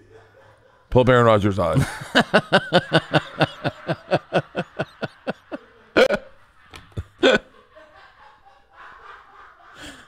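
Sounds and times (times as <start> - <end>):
man laughing: 0.0 - 10.0.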